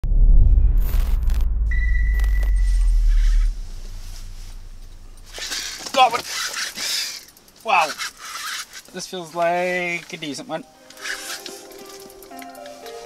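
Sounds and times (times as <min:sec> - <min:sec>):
loud deep rumble: 0:00.0 - 0:05.4
steady high tone: 0:01.4 - 0:05.3
fishing reel cranked clicking: 0:05.4 - 0:09.0, 0:10.9 - 0:12.6.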